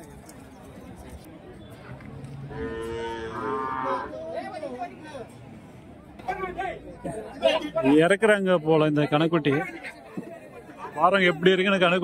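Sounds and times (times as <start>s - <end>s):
cow mooing: 2.5s - 4.1s.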